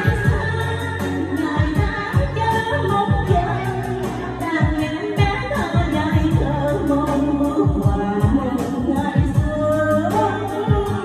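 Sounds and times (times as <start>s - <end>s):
pop backing track with drum beat: 0.0s - 11.0s
woman singing into microphone: 0.0s - 11.0s.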